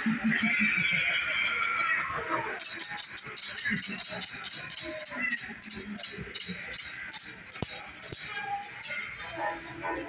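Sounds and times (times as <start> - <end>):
music: 1.8 - 10.0
spinning wheel rapid ticking: 2.6 - 9.0.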